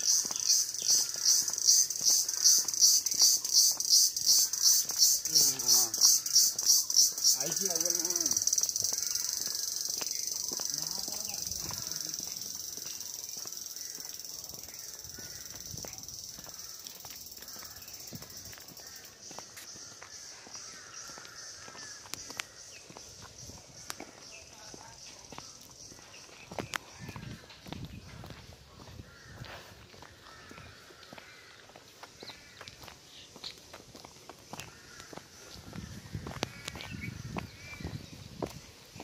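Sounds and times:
high-pitched hiss: 0:00.0 - 0:19.6
footsteps on dirt path: 0:00.0 - 0:39.0
insects droning: 0:00.0 - 0:39.0.

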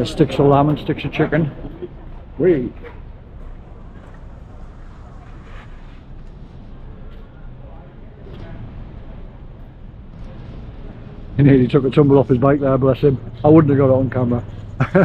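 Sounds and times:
faint background voices: 0:00.0 - 0:14.7
low hum of traffic: 0:00.0 - 0:15.0.

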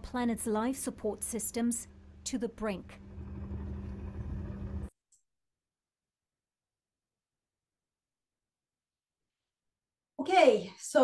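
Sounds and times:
low hum: 0:01.8 - 0:04.9
low rumble: 0:02.8 - 0:04.9.

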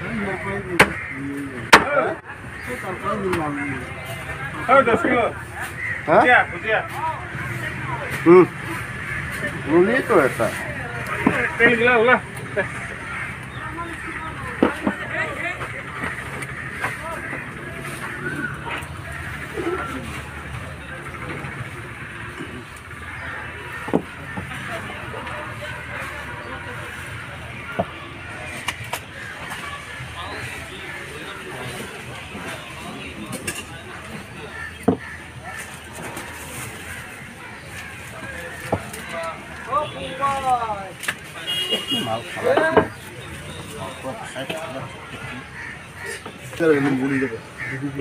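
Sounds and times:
low rumble of passing traffic: 0:00.0 - 0:48.0
people talking: 0:00.0 - 0:48.0.

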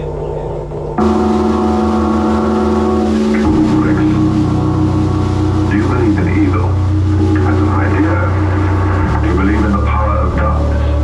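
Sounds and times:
doom metal band playing live: 0:01.0 - 0:11.0.

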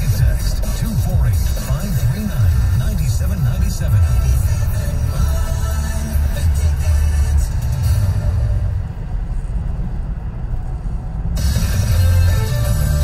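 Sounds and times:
car radio music with strong bass: 0:00.0 - 0:13.0.

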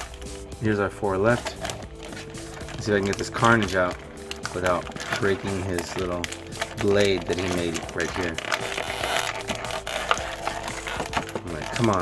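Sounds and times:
plastic packaging clicking and crinkling: 0:00.0 - 0:00.5, 0:01.2 - 0:12.0
background music with held notes: 0:00.0 - 0:12.0.

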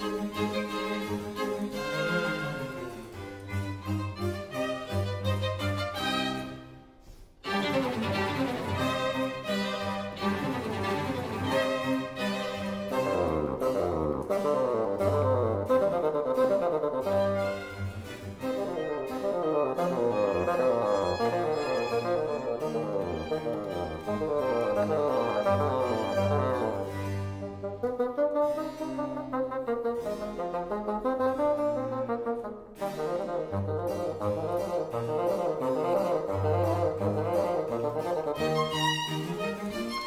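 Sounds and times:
bowed strings: 0:00.0 - 0:40.0
bassoon playing fast runs: 0:07.4 - 0:40.0.

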